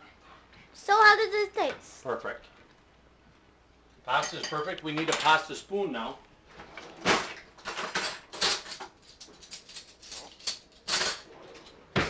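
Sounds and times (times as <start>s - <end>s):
kitchen drawer and utensil clatter: 6.5s - 12.0s.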